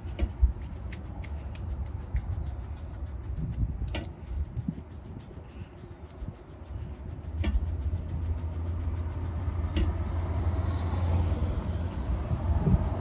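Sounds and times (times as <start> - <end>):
brush buffing leather shoe: 0.0 - 13.0
vehicle engine rumbling: 0.0 - 13.0.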